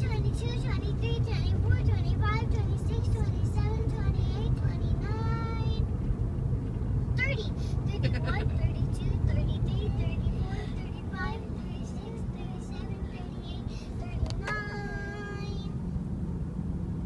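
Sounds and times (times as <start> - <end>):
car road rumble: 0.0 - 17.0.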